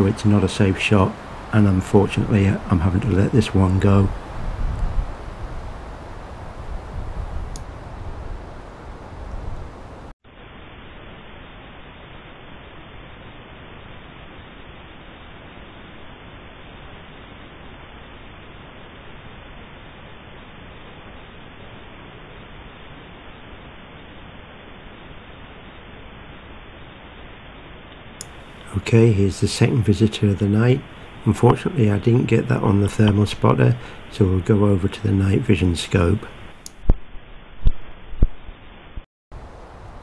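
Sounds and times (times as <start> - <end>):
background hiss: 0.0 - 40.0.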